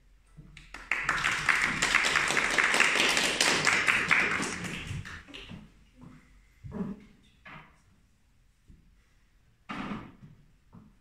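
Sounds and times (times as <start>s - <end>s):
audience applauding: 0.6s - 5.4s.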